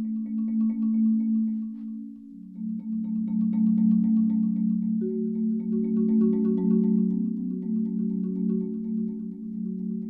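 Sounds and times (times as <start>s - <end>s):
marimba with yarn mallets: 0.0s - 10.0s.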